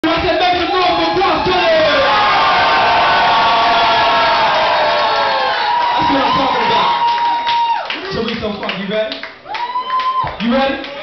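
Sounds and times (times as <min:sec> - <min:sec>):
crowd cheering and whooping: 0:00.8 - 0:08.2, 0:09.4 - 0:10.4.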